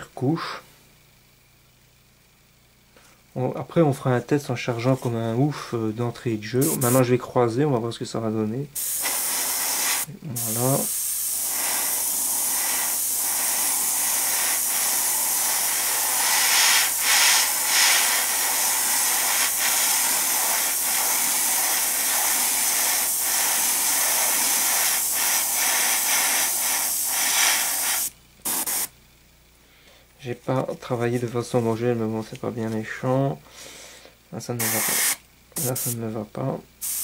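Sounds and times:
airbrush spraying hiss: 0:06.6 - 0:07.1, 0:08.8 - 0:28.9, 0:34.6 - 0:36.0, 0:36.8 - 0:37.0.

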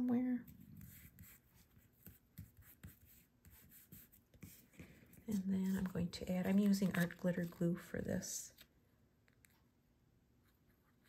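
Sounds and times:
fingers tapping and rubbing paper: 0:00.8 - 0:07.7.

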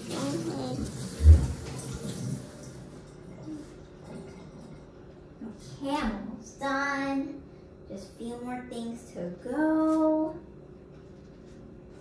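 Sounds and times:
soft voice: 0:00.0 - 0:01.2.

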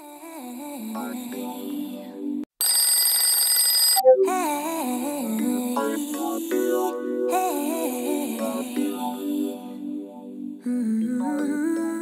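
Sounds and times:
smartphone alarm ringing: 0:02.6 - 0:04.2
background music with gliding melody: 0:04.0 - 0:12.0.

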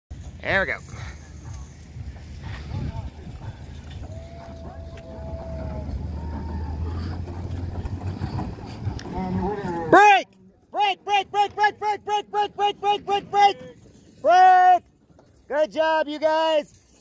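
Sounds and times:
wheels rumbling on concrete: 0:00.1 - 0:17.0.

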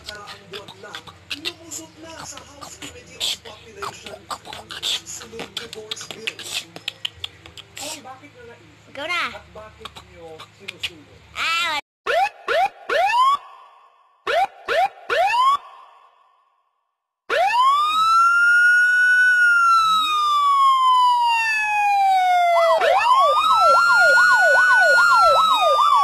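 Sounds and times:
siren wailing and yelping: 0:12.1 - 0:16.2, 0:17.3 - 0:26.0.

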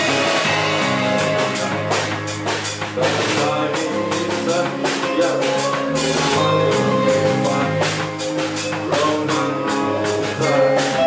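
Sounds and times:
drum and cymbal hits: 0:00.0 - 0:11.0
live rock band playing: 0:00.0 - 0:11.0
person singing: 0:02.8 - 0:11.0.

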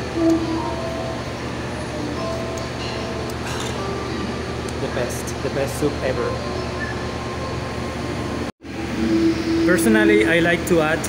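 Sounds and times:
faint music: 0:00.0 - 0:11.0
steady low hum: 0:00.0 - 0:11.0.

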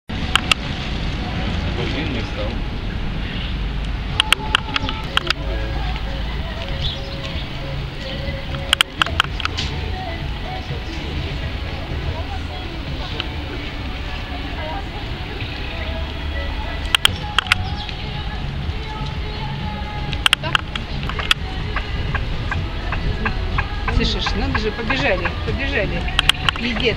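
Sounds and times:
faint distant voices: 0:00.1 - 0:26.9
sharp clicks: 0:08.0 - 0:09.8, 0:16.8 - 0:18.1, 0:20.1 - 0:22.6, 0:26.0 - 0:26.8.

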